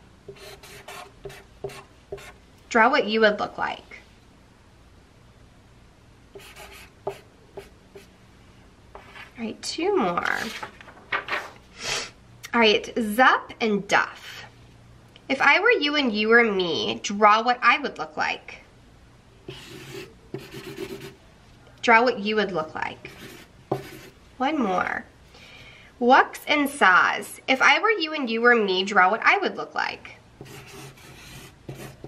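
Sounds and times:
marker drawing on paper: 0:00.3 - 0:02.4, 0:06.4 - 0:08.1, 0:19.5 - 0:21.2, 0:23.0 - 0:24.2, 0:30.4 - 0:32.0.

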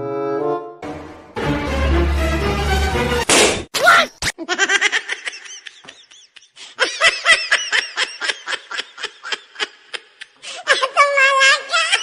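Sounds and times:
high-pitched laughter: 0:04.2 - 0:12.0.

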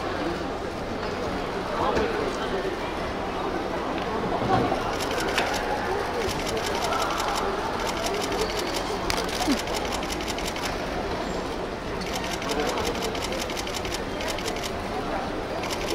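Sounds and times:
camera shutters clicking: 0:06.2 - 0:10.8, 0:12.0 - 0:14.8, 0:15.6 - 0:15.9.

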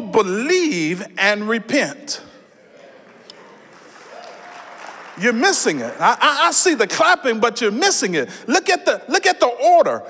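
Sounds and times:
congregation clapping: 0:03.0 - 0:06.8.

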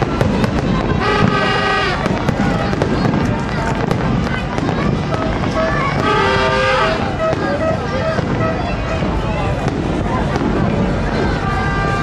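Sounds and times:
crowd chatter: 0:00.0 - 0:12.0
fireworks crackling and popping: 0:00.0 - 0:12.0.

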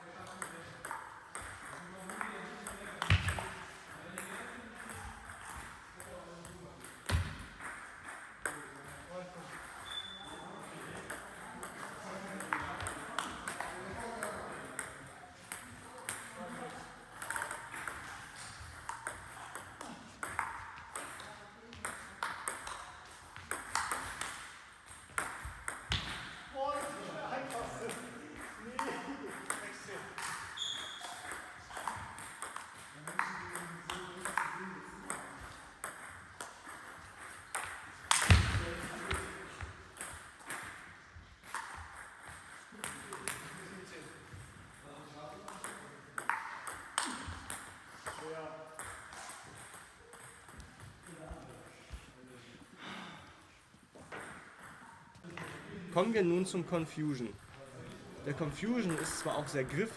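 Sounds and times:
table tennis ball rallies: 0:35.8 - 0:39.3.

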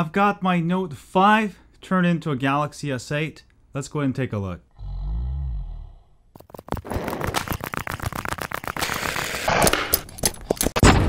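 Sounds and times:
rapid sharp hits: 0:06.4 - 0:10.1.

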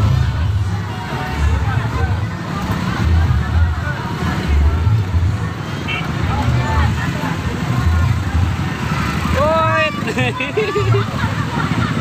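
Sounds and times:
people's voices: 0:00.0 - 0:12.0
vehicle engine running: 0:00.0 - 0:12.0.

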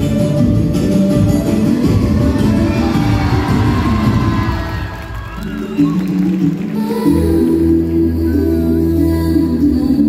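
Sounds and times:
music with busy beat: 0:00.0 - 0:08.4.

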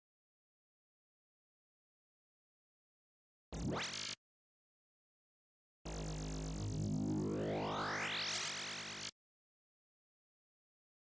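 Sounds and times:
low synth drone: 0:05.9 - 0:09.1
rising synth sweep: 0:05.9 - 0:09.1.

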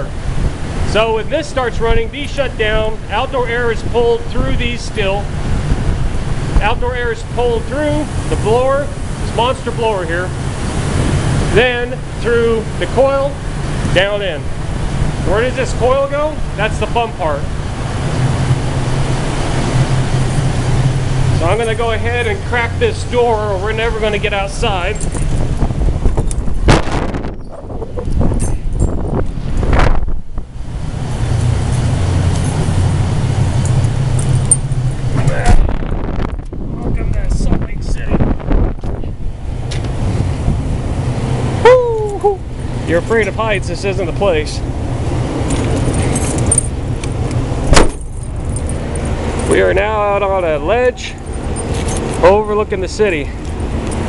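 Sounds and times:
air blower droning: 0:00.0 - 0:54.0
low outdoor rumble: 0:00.0 - 0:54.0
light metallic jingling: 0:21.3 - 0:23.4, 0:24.0 - 0:26.5, 0:28.3 - 0:29.2, 0:31.4 - 0:32.9, 0:33.5 - 0:35.0, 0:42.6 - 0:44.0, 0:45.4 - 0:54.0
sharp knock: 0:47.7 - 0:48.0.

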